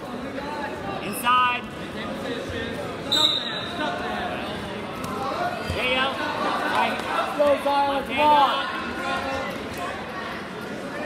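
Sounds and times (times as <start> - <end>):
general chatter: 0.0 - 11.0.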